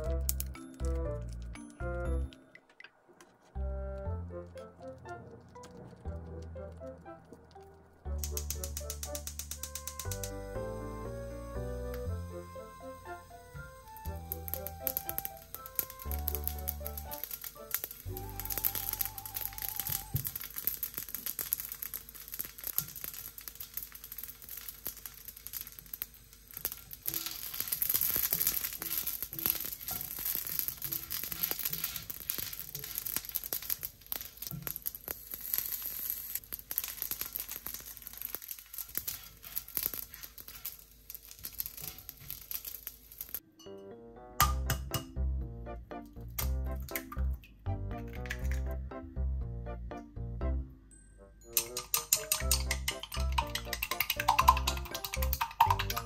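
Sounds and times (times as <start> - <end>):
sausages sizzling in a skillet: 0.0 - 1.5, 8.1 - 43.4, 51.6 - 56.0
soft background music: 0.0 - 20.4, 28.2 - 31.7, 43.4 - 56.0.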